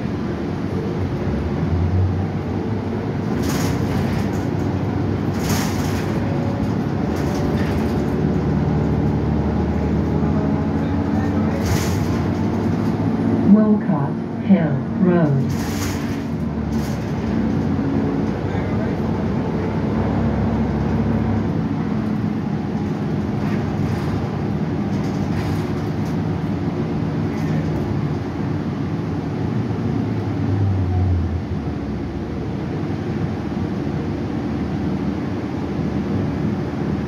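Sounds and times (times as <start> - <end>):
bus engine running: 0.0 - 37.0
road noise: 0.0 - 37.0.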